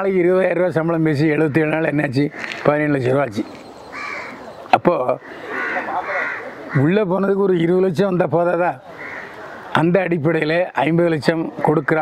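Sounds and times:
crow cawing: 1.4 - 2.8, 3.6 - 7.0, 8.9 - 9.8.

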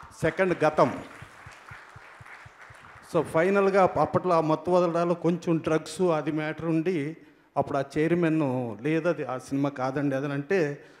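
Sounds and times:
faint audience applause: 0.0 - 3.9.

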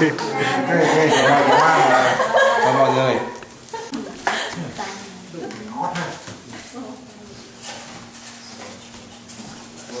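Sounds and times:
chatter of people talking: 0.0 - 7.7.

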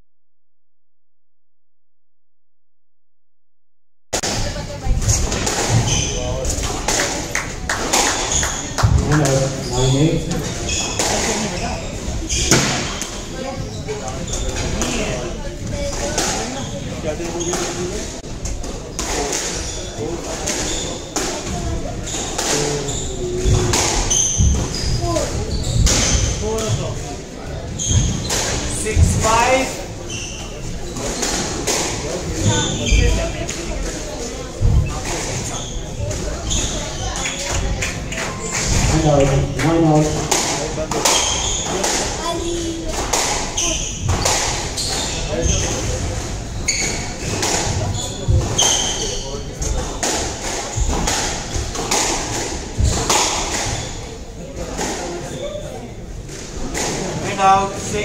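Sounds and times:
shoes squeaking on wooden floor: 5.6 - 6.6, 22.0 - 27.0, 27.7 - 31.6, 32.3 - 33.4, 41.0 - 42.9, 43.5 - 49.8.

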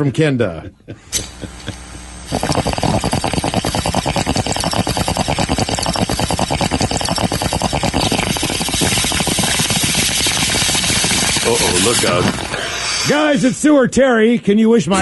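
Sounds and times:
water bubbling through a bong: 2.3 - 12.9.

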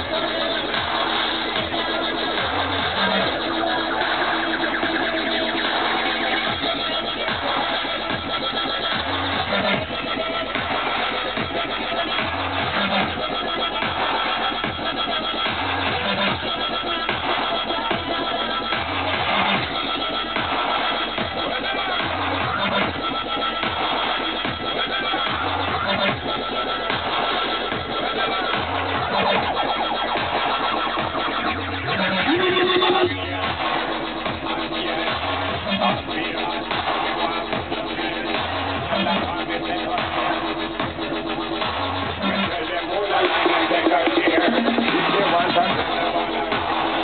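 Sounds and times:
muffled dubstep over sound system: 0.0 - 47.0.

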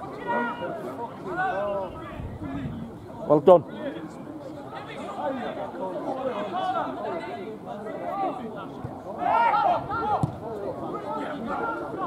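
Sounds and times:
men calling and chattering: 0.0 - 12.0.

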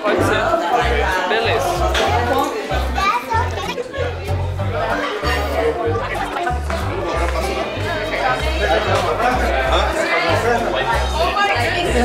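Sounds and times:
adults and children chattering: 0.0 - 12.0.

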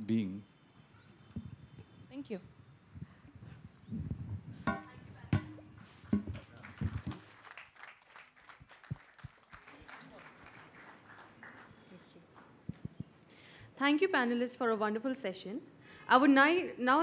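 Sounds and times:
microphone handling knocks: 4.0 - 7.2.

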